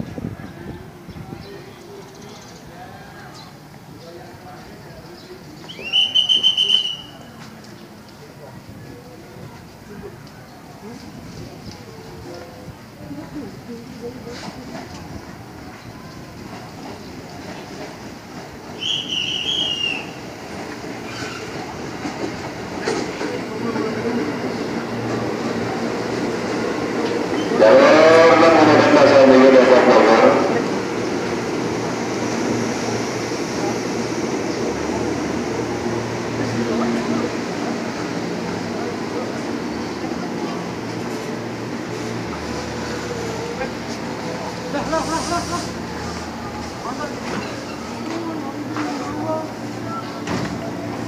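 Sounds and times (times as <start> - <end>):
electric train passing: 11.1 - 51.0
train horn blast: 27.4 - 30.6.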